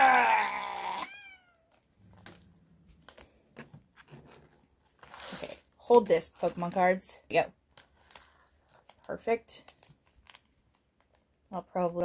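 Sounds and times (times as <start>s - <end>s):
cat meowing: 0.0s - 1.8s
plastic pouch crinkling: 1.7s - 11.4s.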